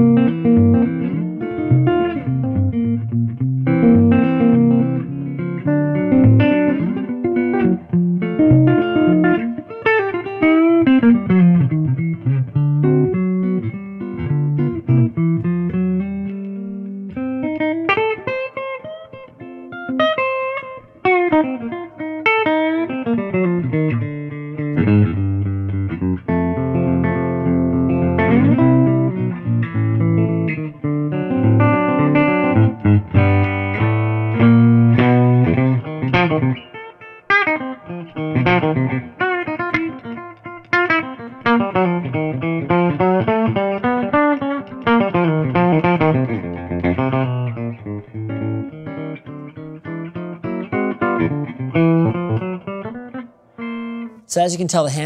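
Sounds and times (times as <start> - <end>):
electric guitar through amplifier: 0.0 - 54.3.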